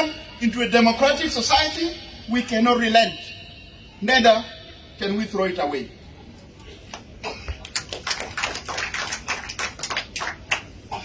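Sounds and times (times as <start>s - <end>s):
audience applauding: 7.6s - 10.7s.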